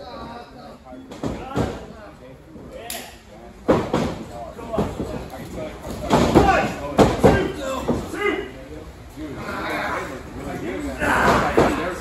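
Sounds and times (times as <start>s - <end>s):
men's voices: 4.3s - 12.0s
men grunting: 10.9s - 12.0s.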